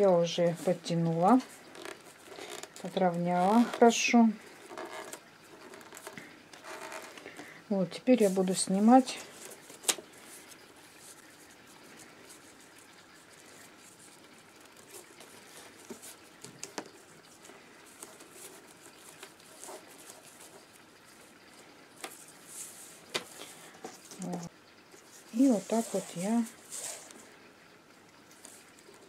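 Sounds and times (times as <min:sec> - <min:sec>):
rustling of paper tubes: 0:00.0 - 0:27.4.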